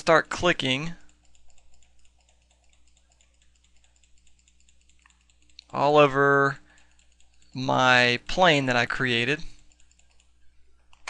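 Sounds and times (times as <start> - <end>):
computer mouse clicks: 0.4 - 7.6, 9.4 - 11.0.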